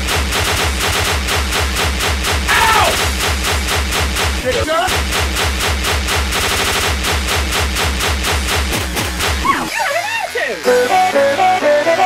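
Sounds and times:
rapid sharp bangs: 0:00.0 - 0:09.8.

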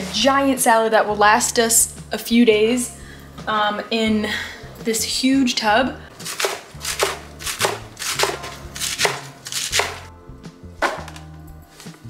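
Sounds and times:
soft background music: 0:00.0 - 0:12.0
knife chopping lettuce on cutting board: 0:06.2 - 0:10.1.

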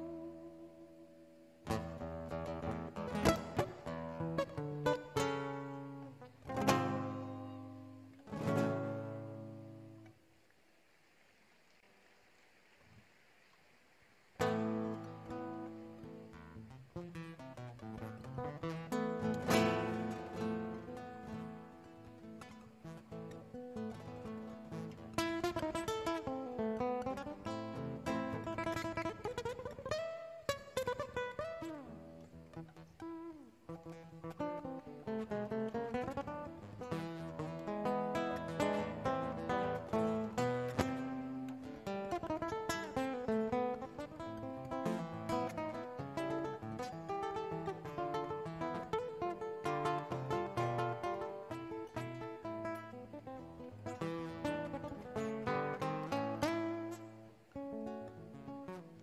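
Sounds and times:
classical guitar fingerstyle: 0:00.0 - 0:10.6, 0:14.3 - 0:59.0.

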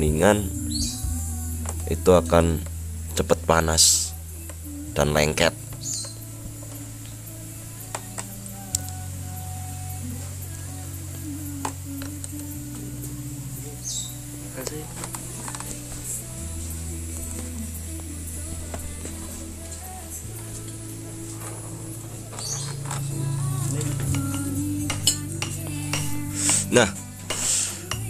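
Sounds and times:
background music with bass: 0:00.0 - 0:28.0.

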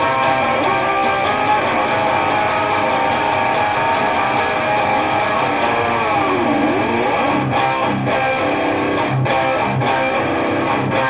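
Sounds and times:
distorted electric guitar riff: 0:00.0 - 0:11.0.

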